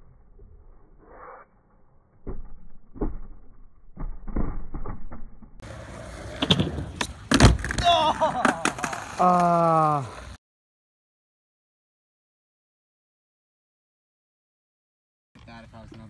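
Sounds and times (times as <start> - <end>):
skateboard wheels rolling: 5.6 - 10.4.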